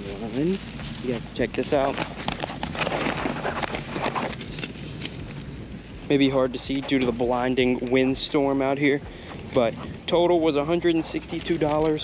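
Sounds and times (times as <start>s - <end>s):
paper receipt crinkling: 0.0s - 12.0s
wind buffeting microphone: 0.0s - 12.0s.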